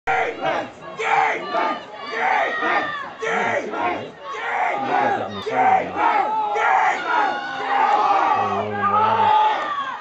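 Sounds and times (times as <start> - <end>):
people shouting: 0.1 - 10.0.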